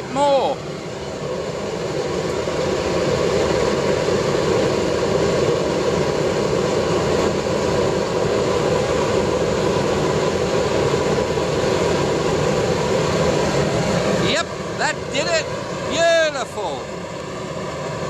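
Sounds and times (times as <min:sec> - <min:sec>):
oil burner flame and blower rushing: 0:00.0 - 0:18.0.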